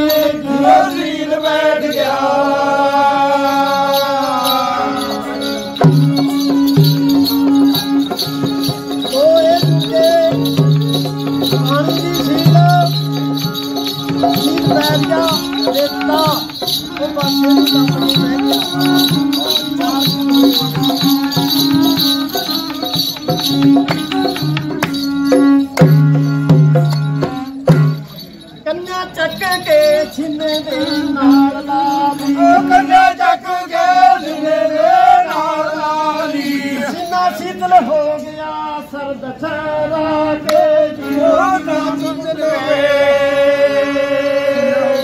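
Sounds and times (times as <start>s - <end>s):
jingling rattle: 0.0s - 2.2s, 3.3s - 33.1s
man singing long note: 2.5s - 28.2s
hand drum beating: 5.1s - 28.3s.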